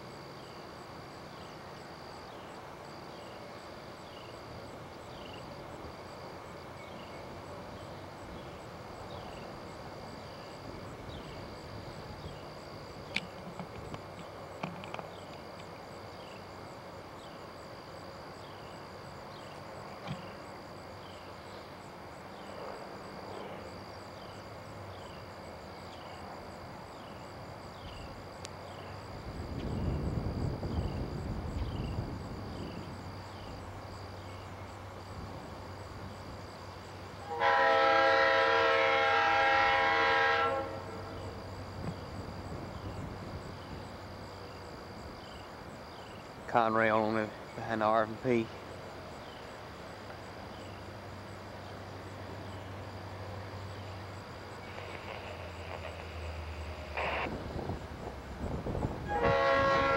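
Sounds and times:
insects chirping: 0:00.0 - 0:59.9
train air horn blast: 0:37.2 - 0:41.2, 0:59.0 - 0:59.9.

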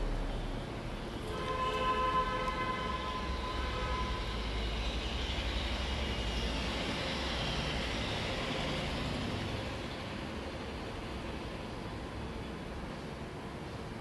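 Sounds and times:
low rumbling background noise: 0:00.0 - 0:14.0.

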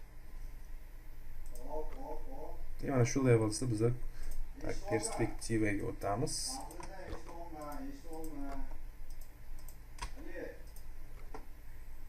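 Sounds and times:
computer mouse clicks: 0:01.4 - 0:02.0, 0:06.5 - 0:11.5
person speaking: 0:01.5 - 0:08.8.

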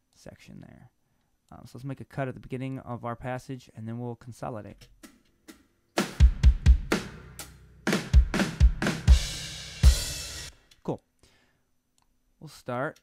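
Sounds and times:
kick drum and snare groove: 0:04.9 - 0:10.5.

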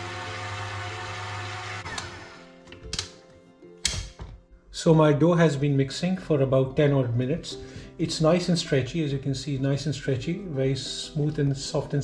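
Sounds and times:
stand mixer motor whirring: 0:00.0 - 0:02.4.

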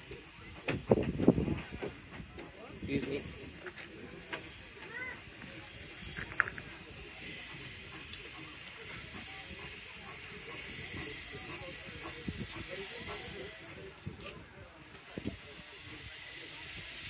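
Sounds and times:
steam locomotive hissing: 0:00.0 - 0:17.0.

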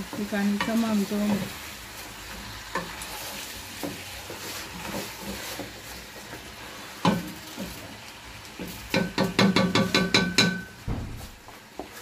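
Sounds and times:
wooden spoon stirring: 0:00.0 - 0:10.5, 0:11.2 - 0:12.0
chicken sizzling in a pot: 0:00.0 - 0:12.0
spoon knocking against pot: 0:08.9 - 0:10.8.

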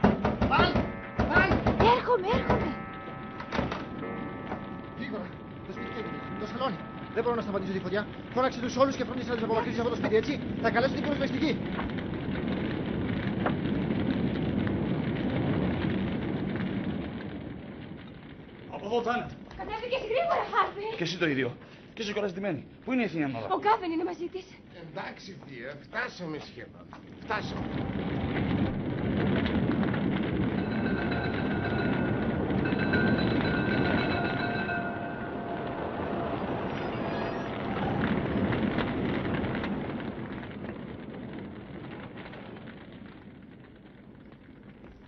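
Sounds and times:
house fire crackling: 0:00.0 - 0:45.0
thin ringing tones: 0:00.5 - 0:10.4, 0:30.4 - 0:38.0.

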